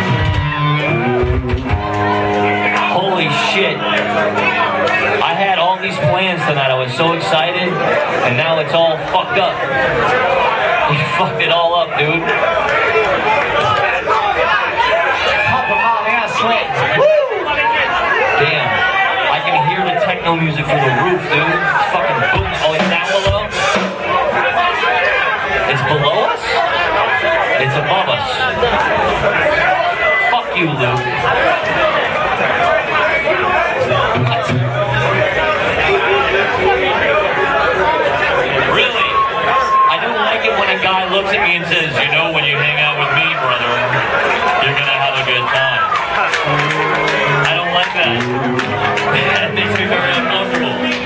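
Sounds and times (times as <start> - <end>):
live band music: 0.0 - 6.7, 22.1 - 24.4, 46.3 - 51.0
crowd chatter: 0.0 - 51.0
voices talking: 2.2 - 16.8, 30.3 - 51.0.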